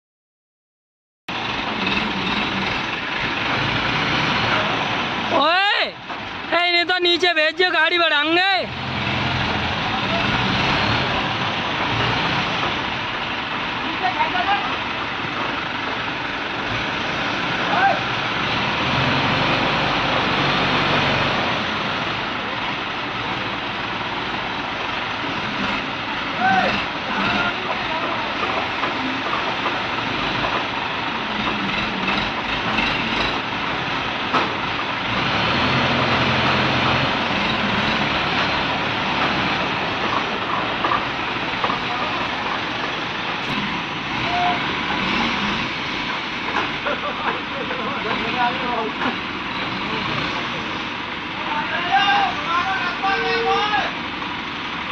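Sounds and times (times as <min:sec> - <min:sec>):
crane diesel engines under load: 0:01.3 - 0:54.9
workers calling out: 0:26.2 - 0:29.6, 0:46.6 - 0:54.0.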